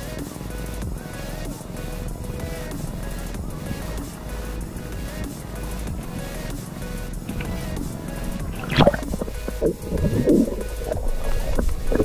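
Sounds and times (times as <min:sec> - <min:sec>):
background music: 0:00.0 - 0:12.0
underwater bubbling and gurgling: 0:07.2 - 0:12.0.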